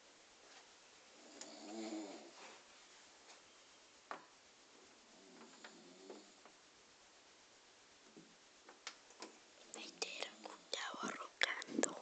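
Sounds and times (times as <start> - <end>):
person whispering: 9.7 - 12.0.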